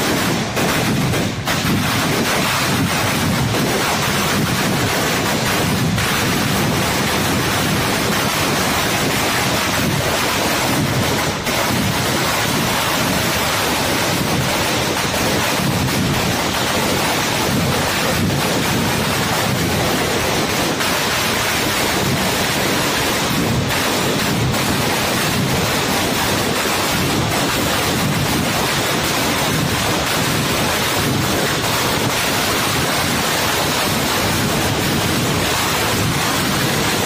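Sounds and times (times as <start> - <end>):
firecrackers crackling: 0.0 - 37.0.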